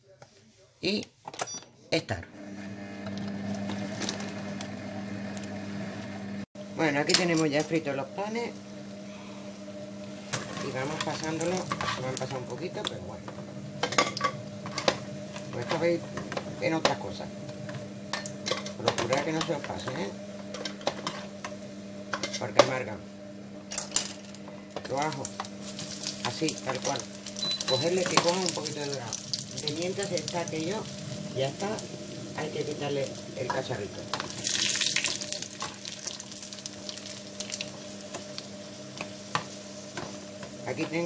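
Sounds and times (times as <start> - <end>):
food processor motor hum: 2.3 - 6.5
steady low hum: 5.4 - 41.0.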